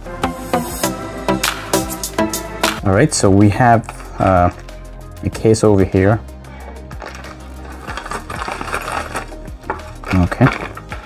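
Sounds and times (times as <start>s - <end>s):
background music: 0.0s - 11.0s
plastic bag crinkling: 6.9s - 11.0s.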